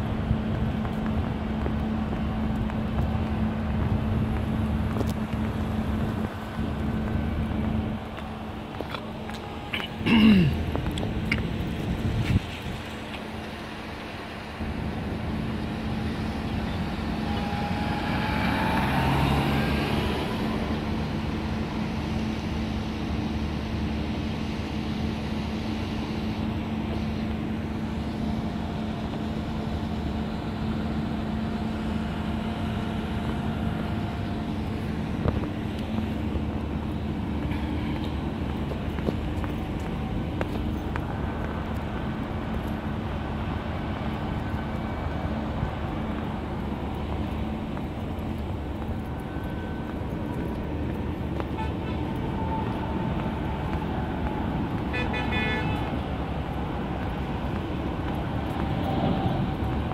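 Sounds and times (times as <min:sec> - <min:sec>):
car engine hum: 0:00.0 - 0:59.9
tyre and road rumble: 0:00.0 - 0:59.9.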